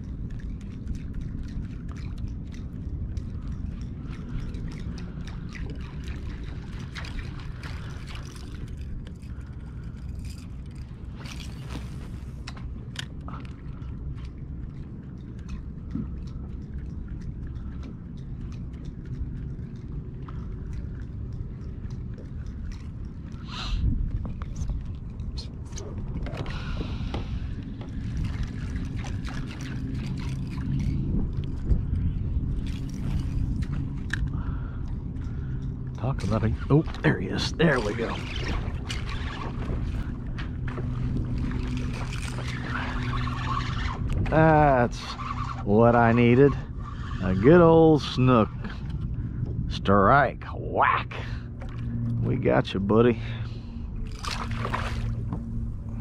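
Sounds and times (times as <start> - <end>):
water sloshing against kayak hull: 0.0 - 49.8, 53.2 - 56.0
steady low rumble: 0.0 - 56.0
rush of water: 54.1 - 56.0.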